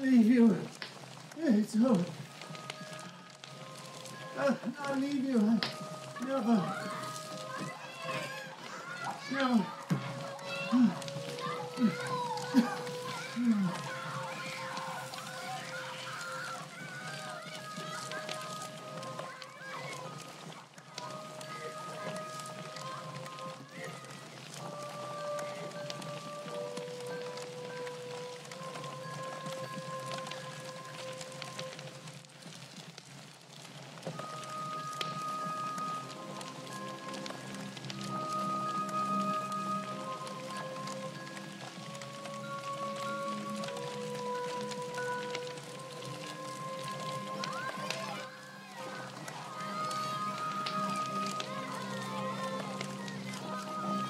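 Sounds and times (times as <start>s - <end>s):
slow melody of held notes: 0.0s - 32.2s, 34.1s - 54.0s
noise hiss: 0.0s - 54.0s
wavering cries: 2.2s - 31.8s, 34.2s - 54.0s.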